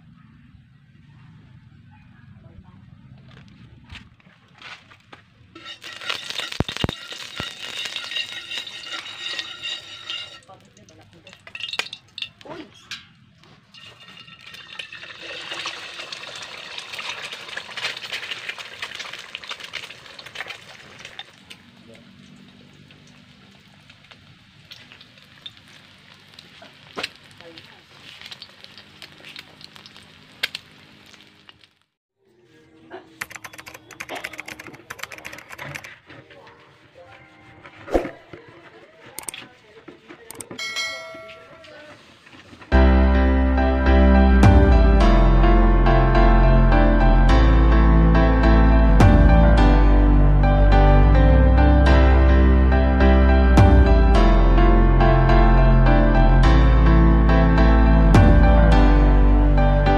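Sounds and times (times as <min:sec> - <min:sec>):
food sizzling in hot oil: 0:05.6 - 0:10.9, 0:13.7 - 0:31.8.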